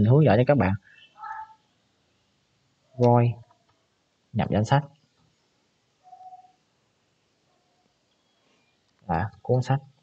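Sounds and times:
faint steady tone: 0:00.0 - 0:10.0.

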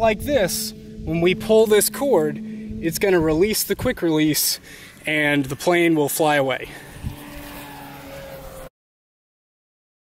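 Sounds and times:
faint steady hum: 0:00.0 - 0:08.6.

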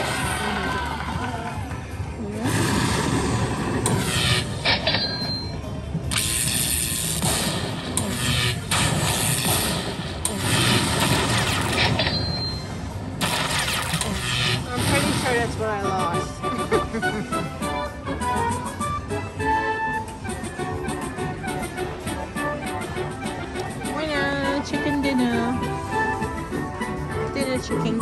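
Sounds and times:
casino background noise: 0:01.9 - 0:28.0
slot machine win music: 0:03.8 - 0:07.6, 0:10.6 - 0:20.2.

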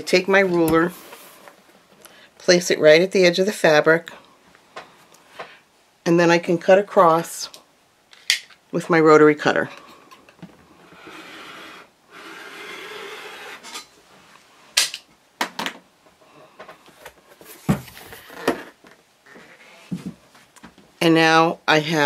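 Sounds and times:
rotary cutter rasping through fabric: 0:10.8 - 0:13.8.

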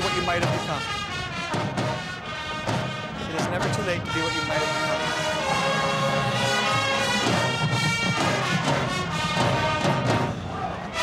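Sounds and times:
marching band playing: 0:00.0 - 0:11.0.

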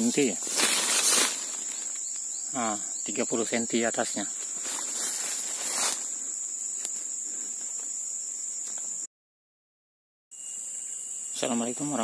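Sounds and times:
insects shrilling: 0:00.0 - 0:09.1, 0:10.3 - 0:12.0
loud rustling: 0:00.4 - 0:01.9.

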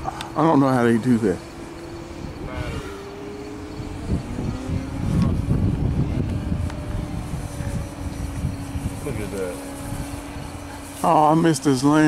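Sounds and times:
model airplane motor drone: 0:00.0 - 0:12.0
low rumble: 0:00.8 - 0:11.0.

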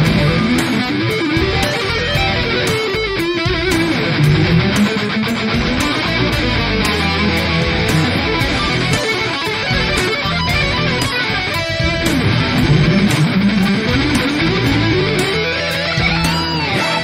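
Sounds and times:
backing track with drums and bass: 0:00.0 - 0:17.0
electric guitar lead line: 0:00.0 - 0:17.0.

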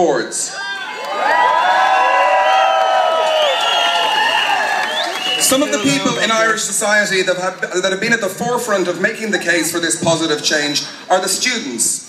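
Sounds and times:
crowd cheering and whooping: 0:00.5 - 0:06.7.

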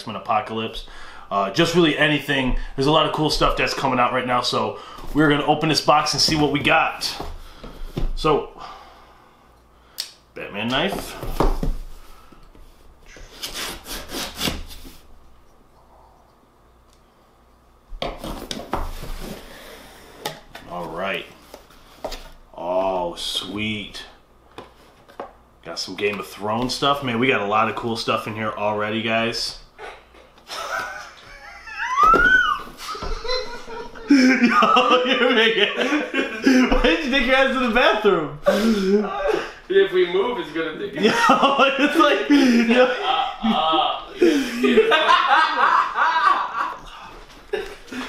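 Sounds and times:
wavering wail-like vocal cry: 0:31.4 - 0:33.4.

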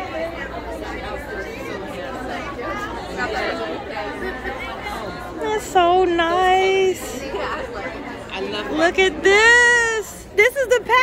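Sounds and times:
background chatter of people: 0:00.0 - 0:11.0.

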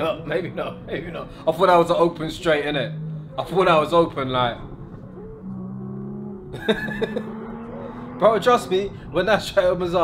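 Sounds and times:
car engine at steady revs: 0:02.1 - 0:10.0.

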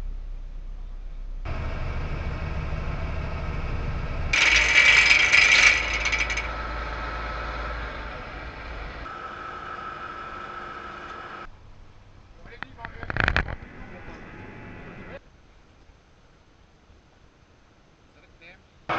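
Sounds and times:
steady whine: 0:00.0 - 0:15.2
winch running: 0:02.0 - 0:11.5
loud metallic rattle: 0:04.3 - 0:07.9.

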